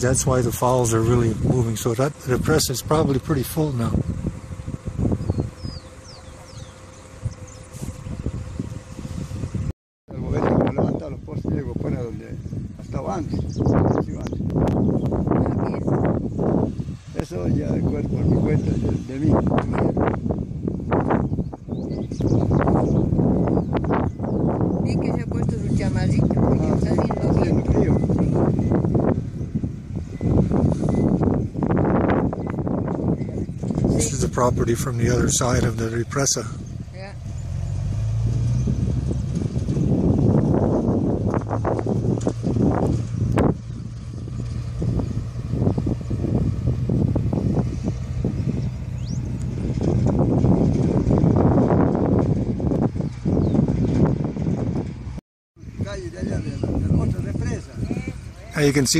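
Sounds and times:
wind buffeting microphone: 0:00.0 - 0:58.9
high bird chirps: 0:05.0 - 0:08.3, 0:20.9 - 0:24.8, 0:27.0 - 0:33.9, 0:48.3 - 0:49.6.

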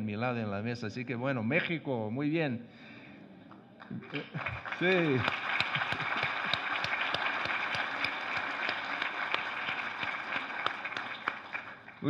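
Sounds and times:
audience applauding: 0:03.8 - 0:12.0.

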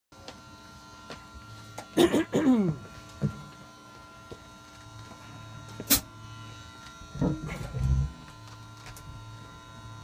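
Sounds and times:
amplifier buzz and hum: 0:00.1 - 0:10.0.

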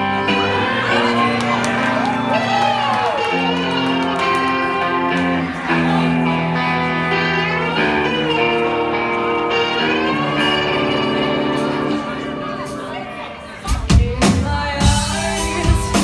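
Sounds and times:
electric guitars: 0:00.0 - 0:16.0
live rock band: 0:00.0 - 0:16.0
person singing: 0:13.6 - 0:16.0.

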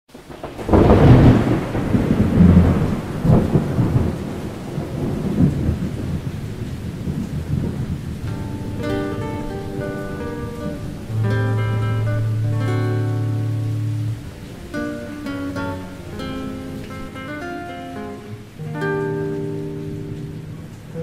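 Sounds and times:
steady rain: 0:00.1 - 0:21.0
thunder rumble: 0:00.2 - 0:21.0
plucked guitar notes: 0:08.2 - 0:21.0.

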